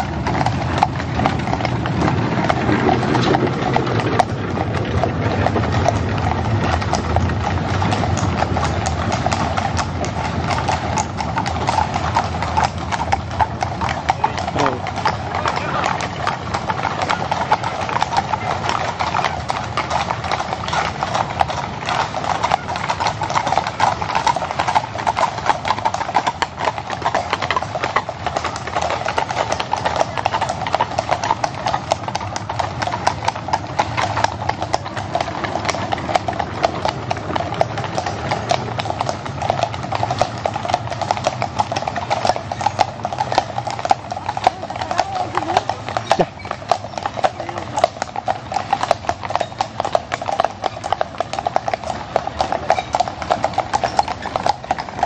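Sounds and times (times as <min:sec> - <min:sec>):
horse hooves clip-clopping on asphalt: 0:00.0 - 0:55.0.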